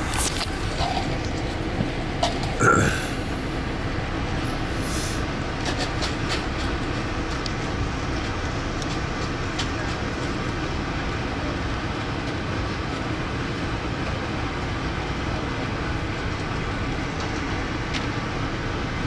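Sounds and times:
train rumbling on track: 0.0 - 19.0.

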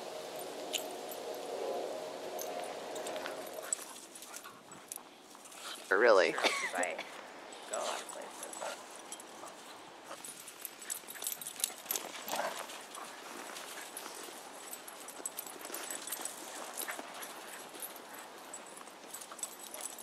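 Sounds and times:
dogs scuffling: 0.2 - 5.9, 7.6 - 20.0
paws crunching on snow: 7.7 - 20.0.

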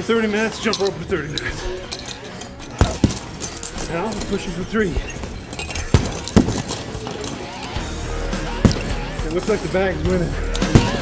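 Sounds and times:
background music: 0.0 - 11.0
punches thudding on punching bag: 2.7 - 7.3, 8.2 - 9.4, 10.1 - 11.0.

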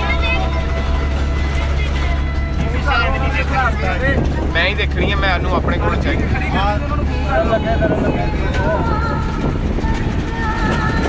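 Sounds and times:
bus engine and road rumble: 0.0 - 11.0
faint voices: 0.0 - 11.0.

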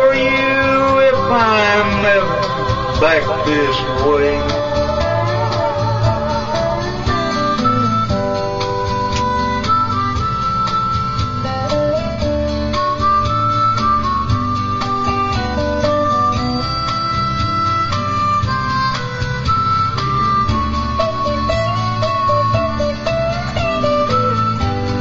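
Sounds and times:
acoustic guitar accompaniment: 0.0 - 25.0
lead melody of held notes: 0.0 - 25.0.

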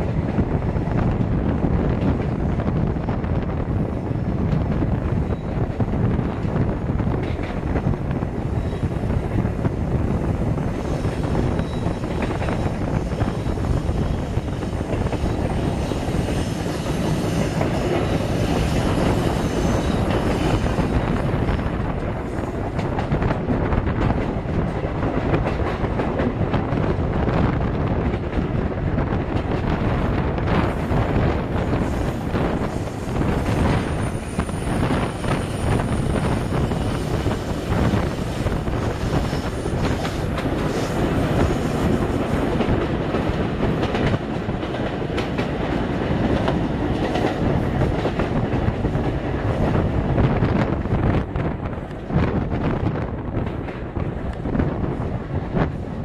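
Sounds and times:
passing trains: 0.0 - 56.0
train rumbling: 0.0 - 56.0.

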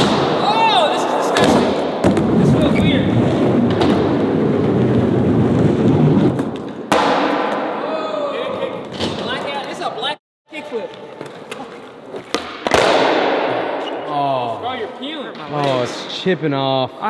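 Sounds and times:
skateboard wheels rolling on concrete: 2.0 - 7.0.

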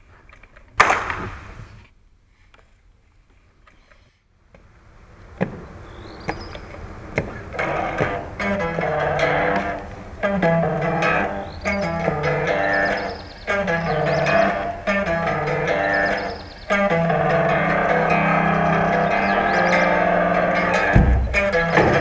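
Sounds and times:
rock guitar and bass riff: 7.3 - 22.0.

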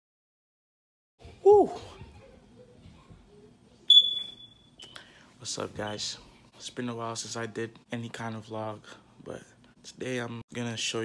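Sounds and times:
high-pitched electronic beep: 3.9 - 4.9.

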